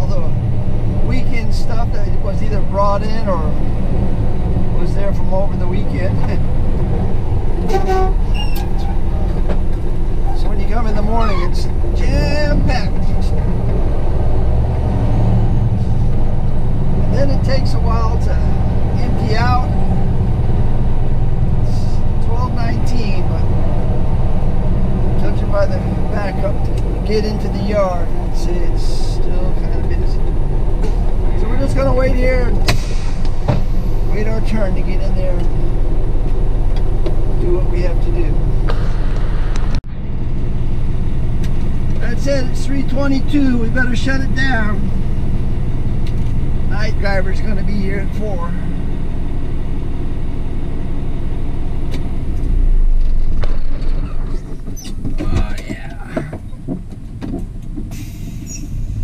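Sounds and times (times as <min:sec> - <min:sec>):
diesel engine rumble: 0:00.0 - 0:59.0
road noise: 0:00.0 - 0:59.0.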